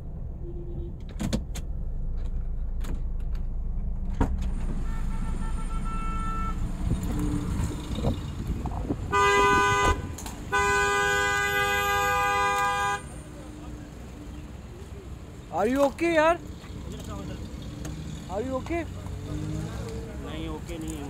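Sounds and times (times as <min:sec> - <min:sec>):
traffic and engine rumble: 0:00.0 - 0:21.0
car horn blasts: 0:00.4 - 0:01.0, 0:04.7 - 0:07.4, 0:09.1 - 0:13.2.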